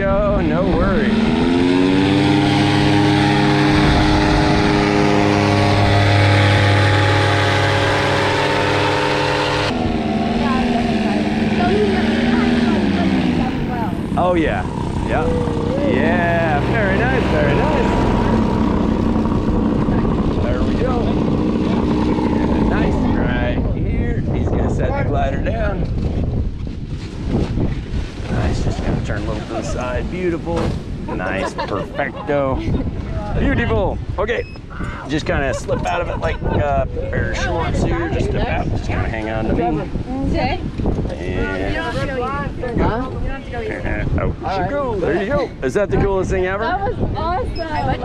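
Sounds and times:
paramotor engine and propeller: 0.0s - 45.7s
wind buffeting microphone: 0.0s - 48.0s.

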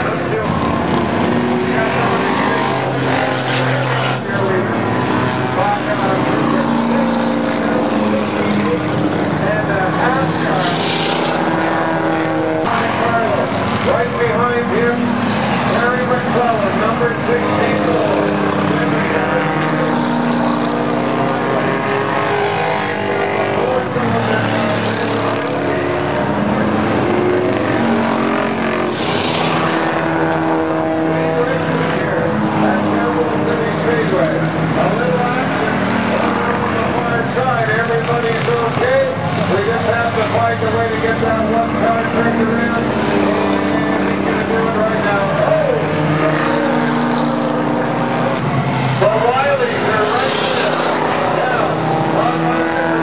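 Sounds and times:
stock car engines racing: 0.0s - 53.0s.

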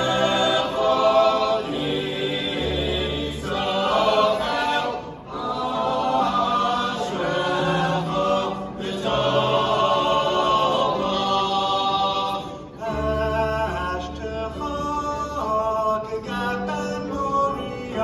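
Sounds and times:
men's choir singing a cappella: 0.0s - 18.0s.

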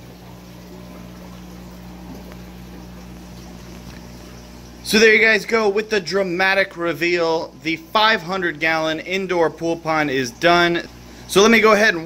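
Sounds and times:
pump humming: 0.0s - 12.0s
water pouring into pool: 0.0s - 12.0s.

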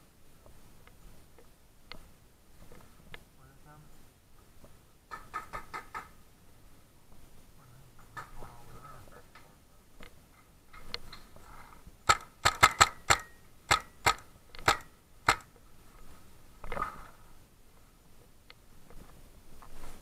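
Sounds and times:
rustling: 0.0s - 20.0s
paintball gun firing cracks: 12.0s - 15.5s.

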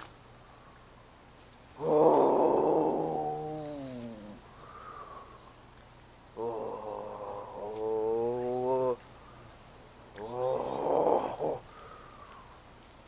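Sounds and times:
person groaning: 1.8s - 4.4s, 6.4s - 9.0s, 10.2s - 11.6s.

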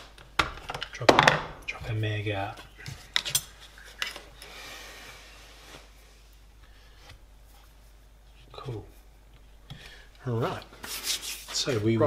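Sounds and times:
soft rustling: 1.8s - 12.0s.

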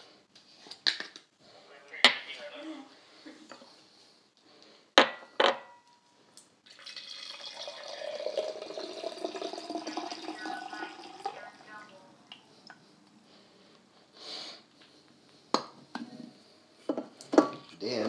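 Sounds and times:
drink pouring into a glass: 6.6s - 11.6s.

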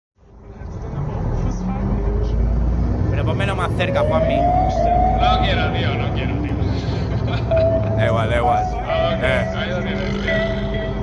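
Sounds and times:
low vehicle rumble: 0.2s - 11.0s
traffic noise: 0.2s - 11.0s
people's voices: 3.1s - 11.0s.

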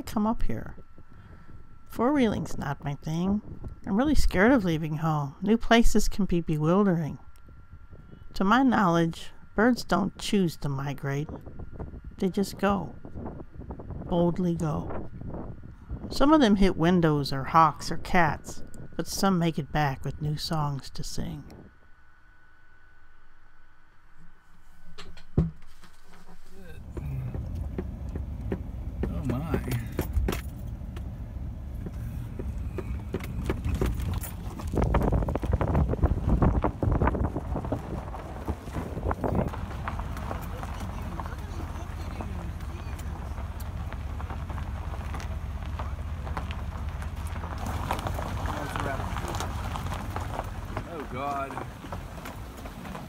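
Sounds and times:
truck engine and road rumble: 0.0s - 53.0s
knocks and rattles from bumps: 24.9s - 53.0s.

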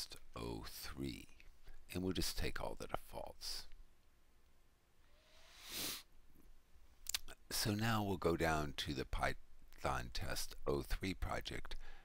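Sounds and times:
man speaking: 0.0s - 3.7s
short hiss: 5.2s - 6.1s.

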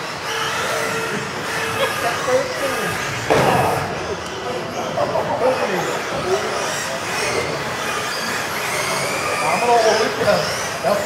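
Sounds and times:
electric rc car motors whining: 0.0s - 11.0s.

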